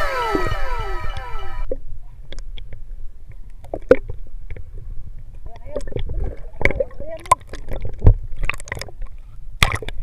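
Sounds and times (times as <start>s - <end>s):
low rumble of water and wind: 0.0s - 10.0s.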